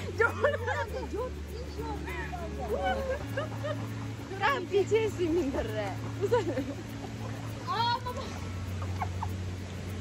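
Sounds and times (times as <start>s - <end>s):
river water splashing: 0.0s - 10.0s.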